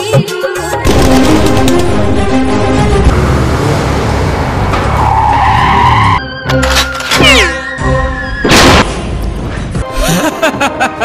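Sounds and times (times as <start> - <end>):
speeding vehicle: 2.6 - 6.2
tyres screeching: 4.6 - 8.5.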